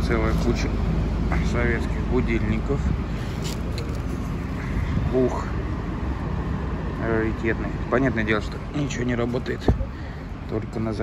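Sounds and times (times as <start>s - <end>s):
low outdoor background rumble: 0.0s - 11.0s.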